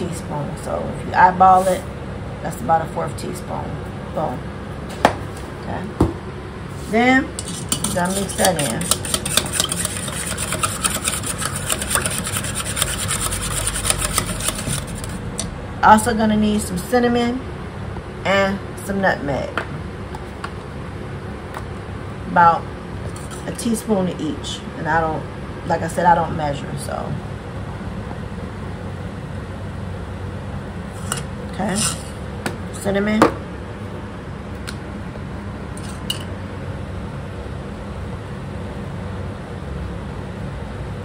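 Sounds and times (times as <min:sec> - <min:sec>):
low room hum: 0:00.0 - 0:41.0.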